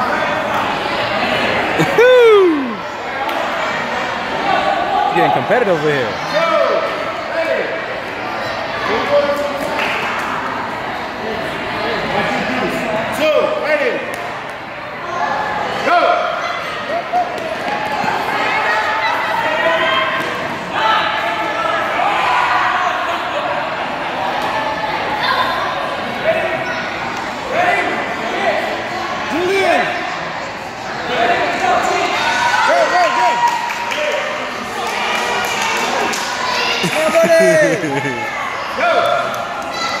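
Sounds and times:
crowd talking and calling out: 0.0s - 40.0s.

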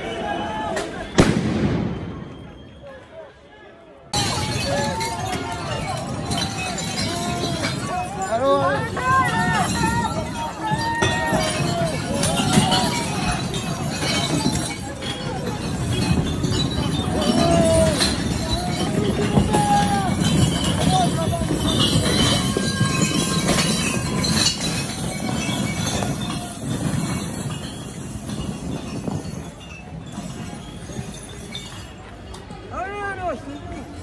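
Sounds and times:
bin rumbling on asphalt: 4.2s - 32.6s
glass bottles clattering and shattering: 4.2s - 32.6s.

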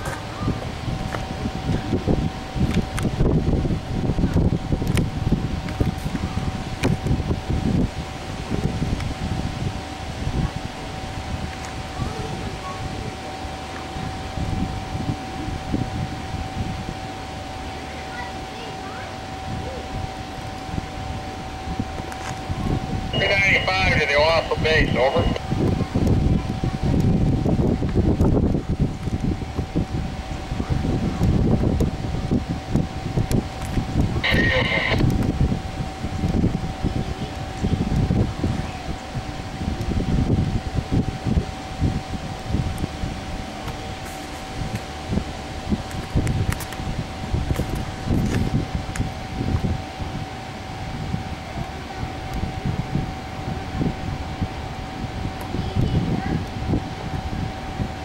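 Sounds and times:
diesel locomotive rumble: 0.0s - 58.0s
wind buffeting microphone: 0.0s - 58.0s.

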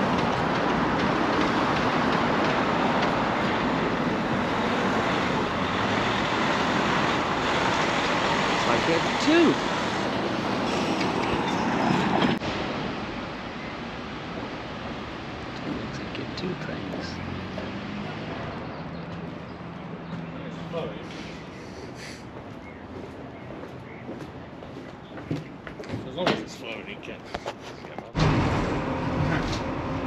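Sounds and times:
distant voices: 0.0s - 29.8s
road traffic passing: 0.0s - 30.0s.

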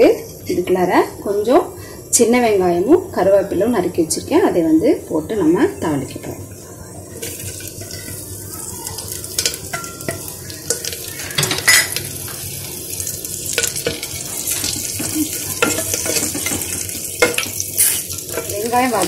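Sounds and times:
shallots sizzling in hot oil: 0.0s - 19.0s
clinks and scrapes on steel plate: 9.3s - 12.1s, 13.5s - 18.6s.

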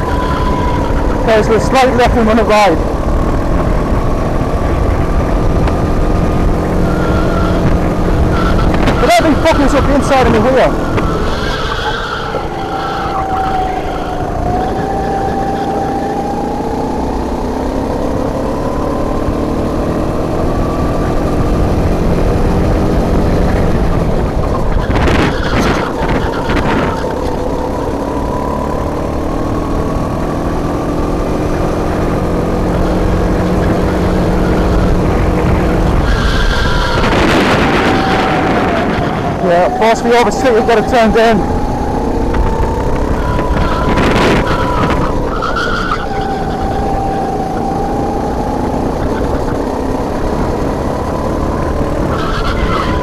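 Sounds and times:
kart engine at full throttle: 0.0s - 53.0s
low rumble of vibration and wind: 0.0s - 53.0s.

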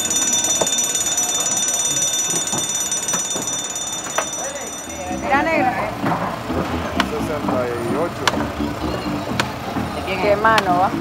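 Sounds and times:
workers' voices chattering: 0.0s - 11.0s
music: 4.8s - 11.0s.

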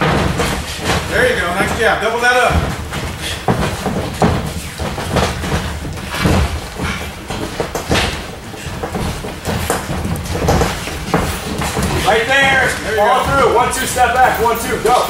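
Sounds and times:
boxing gloves thudding: 0.0s - 15.0s.

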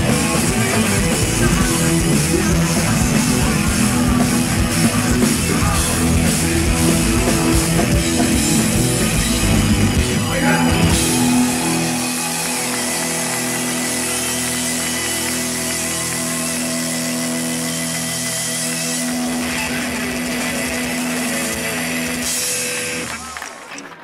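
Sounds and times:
electric guitars ringing chord: 0.0s - 23.3s.

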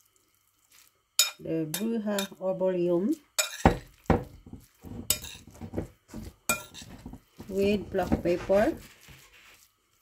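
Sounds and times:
spoon clinking against glass bowl: 1.2s - 2.4s, 3.4s - 4.3s, 5.1s - 5.6s, 6.5s - 6.9s
spoon scraping in bowl: 3.4s - 9.7s.

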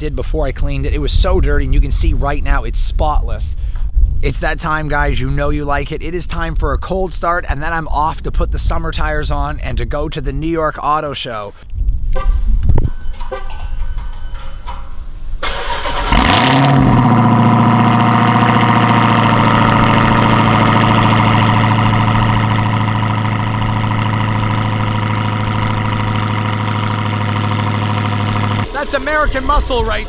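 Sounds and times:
car engine starting and idling: 13.0s - 30.0s.

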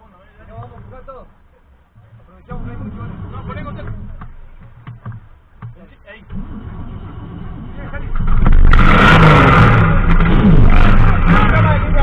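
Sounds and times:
engine knocks: 1.9s - 12.0s
race car engine revving: 2.5s - 4.4s, 6.2s - 12.0s.

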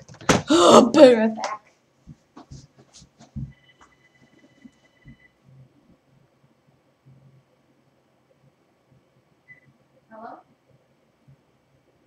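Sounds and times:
faint high pulsing tone: 3.5s - 5.7s.

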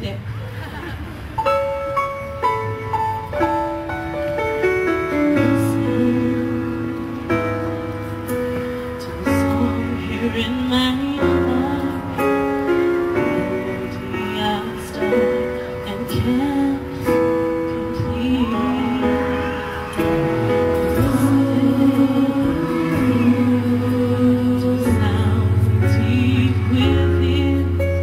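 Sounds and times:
backing music: 1.3s - 28.0s
woman singing: 5.4s - 7.4s, 9.0s - 19.9s, 20.9s - 28.0s.

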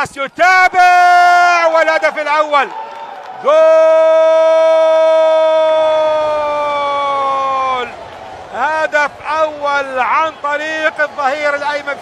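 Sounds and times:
man speaking: 0.0s - 2.7s, 8.5s - 12.0s
man shouting long goal cry: 0.0s - 2.8s, 3.4s - 12.0s.

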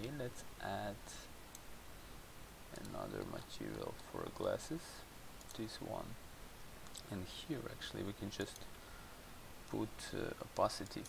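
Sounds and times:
computer mouse clicks: 5.4s - 5.6s, 6.8s - 7.1s.

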